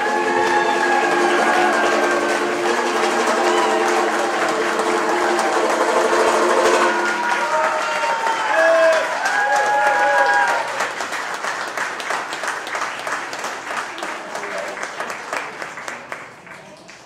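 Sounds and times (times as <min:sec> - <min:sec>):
audience applauding: 0:00.0 - 0:17.0
banjo chord ringing: 0:04.5 - 0:07.3.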